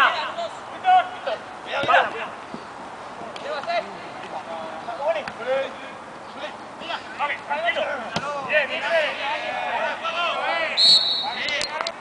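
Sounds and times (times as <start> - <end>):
players shouting: 0.0 - 2.4, 3.2 - 11.8.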